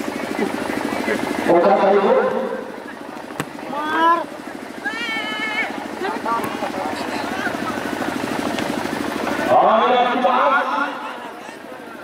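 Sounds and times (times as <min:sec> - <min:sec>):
fast-pulsing low mechanical hum: 0:00.0 - 0:12.0
people shouting and calling: 0:03.4 - 0:08.2.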